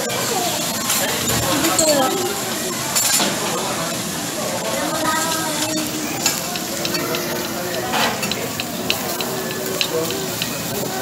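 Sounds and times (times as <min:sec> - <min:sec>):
food sizzling on a griddle: 0:00.1 - 0:11.0
metal spatulas scraping and clacking: 0:05.1 - 0:10.8.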